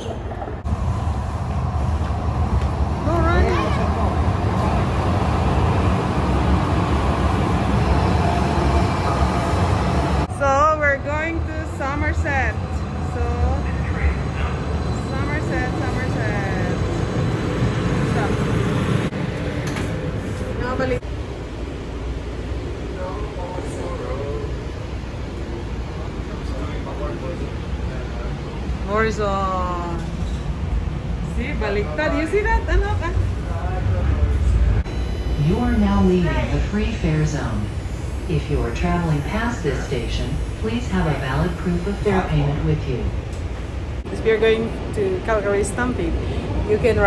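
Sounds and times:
train rumbling into platform: 0:00.0 - 0:47.0
voices: 0:10.2 - 0:18.9, 0:31.2 - 0:47.0.

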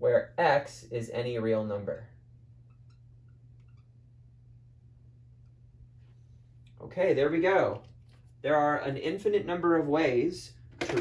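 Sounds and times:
low hum: 0:00.0 - 0:10.8
marker squeaking on whiteboard: 0:02.6 - 0:04.0.

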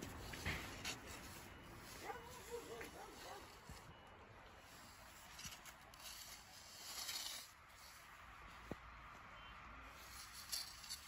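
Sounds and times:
shovel scraping into sand: 0:04.8 - 0:08.1.

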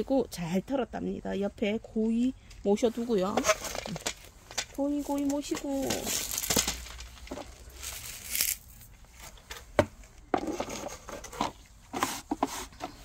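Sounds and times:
hand rustling on plastic basin: 0:04.9 - 0:09.4.

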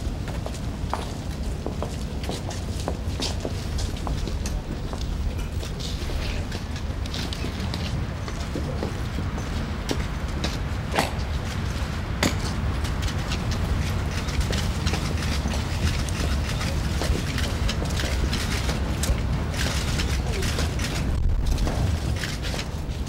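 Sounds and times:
low rumble: 0:20.8 - 0:23.0.

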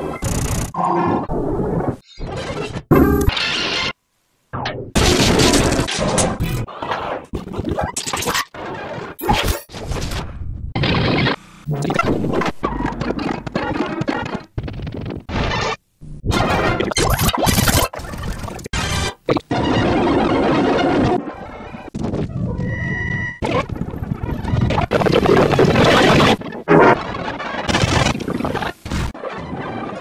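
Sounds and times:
sound effects: 0:02.2 - 0:03.9, 0:10.8 - 0:14.4.

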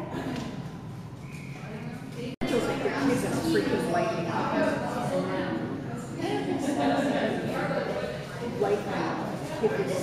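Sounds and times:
voices: 0:01.2 - 0:10.0.

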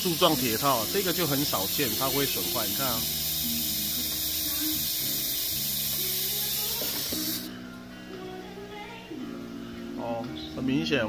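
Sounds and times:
loud steady hiss: 0:00.0 - 0:07.5
background music with held notes: 0:00.0 - 0:11.0.

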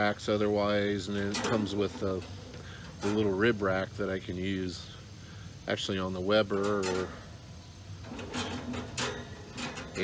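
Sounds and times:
wire rack clinking on metal grate: 0:00.9 - 0:03.6, 0:06.4 - 0:10.0.

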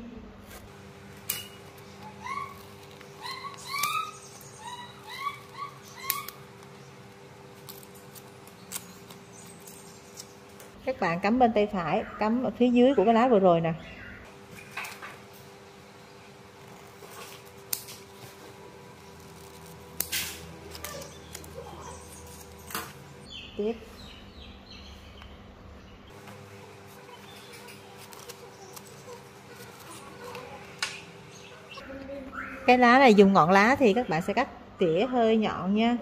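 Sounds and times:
small bird chirping: 0:01.8 - 0:10.5, 0:20.7 - 0:26.2
scissors snipping a leaf: 0:05.0 - 0:06.7, 0:07.6 - 0:10.4, 0:16.9 - 0:18.4, 0:19.0 - 0:22.9
leaf rustling: 0:16.5 - 0:23.0, 0:26.1 - 0:30.8.

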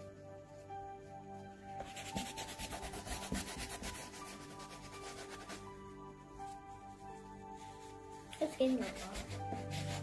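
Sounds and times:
faint background music: 0:00.0 - 0:10.0
tissue paper rubbing on paper: 0:00.4 - 0:10.0.

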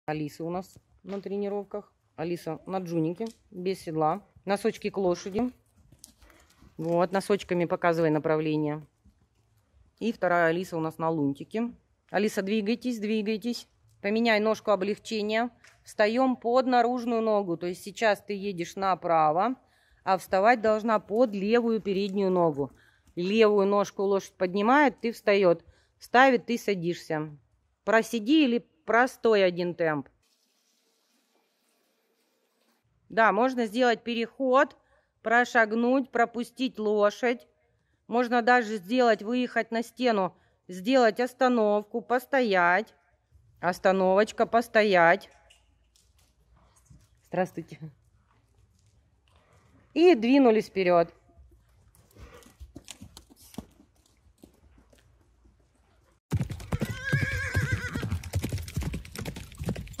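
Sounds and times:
horse walking on sand: 0:20.1 - 0:23.8
horse clip-clop hoofbeats: 0:51.4 - 1:00.0
horse whinnying: 0:56.6 - 0:58.3.

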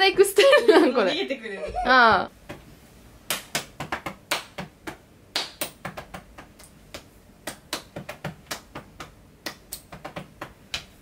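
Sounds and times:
hands tapping on body: 0:03.3 - 0:11.0.

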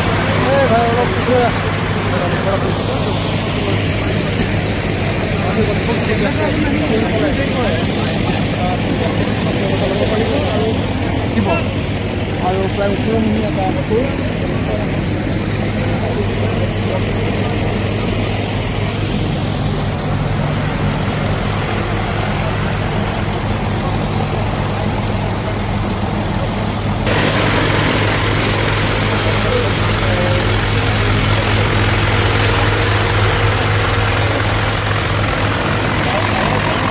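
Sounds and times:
aircraft engine idling: 0:00.0 - 0:36.9
loud hiss: 0:26.8 - 0:36.9.

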